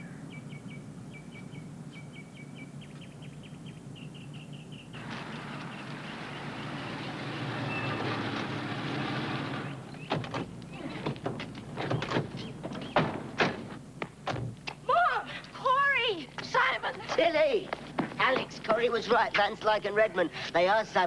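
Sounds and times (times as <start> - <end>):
small bird chirping: 0.0 - 6.8, 11.9 - 13.0
car engine and tyres: 5.0 - 14.6.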